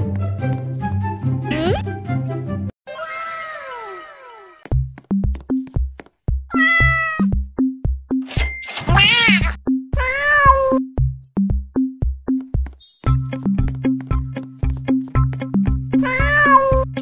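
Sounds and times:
cat meowing: 6.5 - 7.3, 8.9 - 10.8, 16.0 - 16.9.

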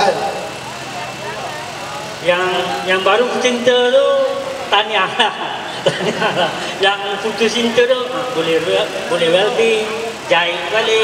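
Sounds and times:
faint crowd chatter: 0.0 - 11.0
low traffic hum: 0.0 - 11.0.

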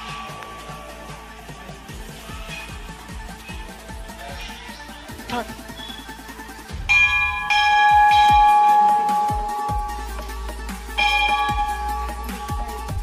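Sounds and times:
background music: 0.0 - 13.0
metal bell ringing: 6.9 - 10.1, 11.0 - 13.0.

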